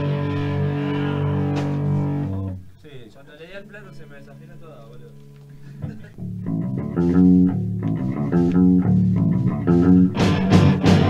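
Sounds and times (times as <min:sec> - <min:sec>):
bass and guitar riff: 0:00.0 - 0:02.8, 0:04.2 - 0:11.0.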